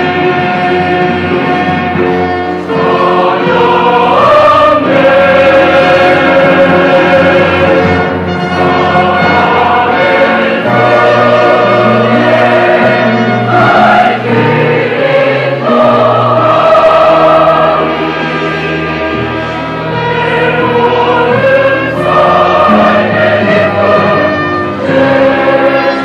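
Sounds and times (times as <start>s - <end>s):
choir singing held chords: 0.0s - 26.0s.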